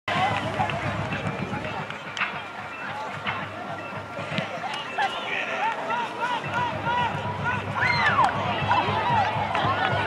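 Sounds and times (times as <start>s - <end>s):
people talking and calling out: 0.1s - 10.0s.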